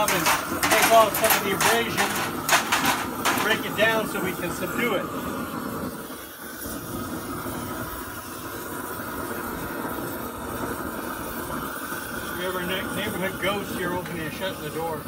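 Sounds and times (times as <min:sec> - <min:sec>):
propane torch rushing: 0:00.0 - 0:15.0.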